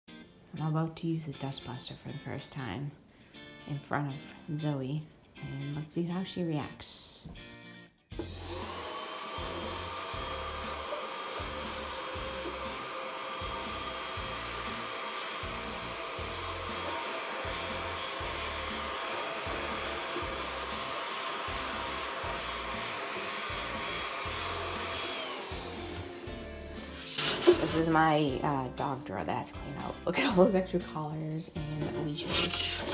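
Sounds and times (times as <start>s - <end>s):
handheld vacuum whining: 8.1s - 28.7s, 31.9s - 32.9s.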